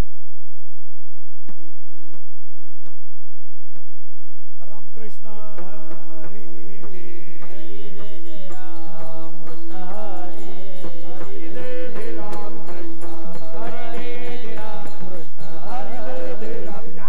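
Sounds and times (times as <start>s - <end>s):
man singing lead: 4.6s - 17.0s
men's chorus chanting: 5.2s - 17.0s
steady drone: 7.7s - 17.0s.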